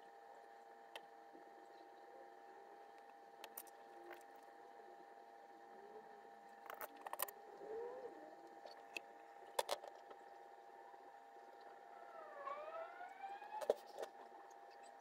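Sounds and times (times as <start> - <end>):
faint steady hum: 0.0 - 15.0
faint wailing tone: 11.8 - 14.4.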